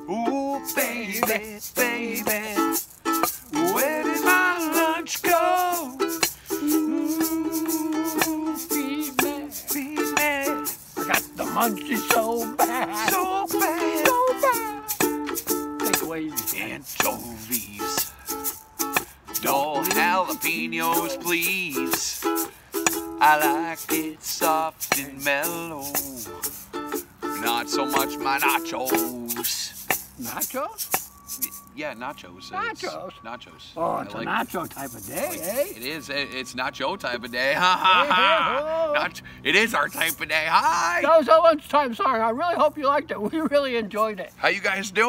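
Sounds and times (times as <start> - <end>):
men singing: 0.0 - 15.1, 15.8 - 18.2, 19.3 - 26.6, 27.4 - 29.9
hand shaker rhythm: 0.0 - 31.8, 34.2 - 36.1, 39.6 - 41.2
ukulele strumming: 0.0 - 33.0, 33.9 - 36.6, 39.7 - 41.2.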